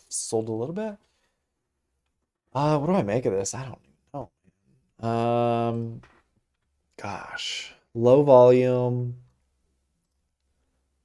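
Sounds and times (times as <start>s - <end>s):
person speaking: 0.0s - 1.1s, 2.4s - 6.2s, 6.9s - 9.3s.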